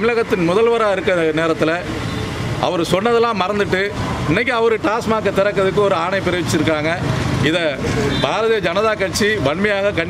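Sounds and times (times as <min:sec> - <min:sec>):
man talking: 0:00.0 - 0:02.0, 0:02.6 - 0:10.0.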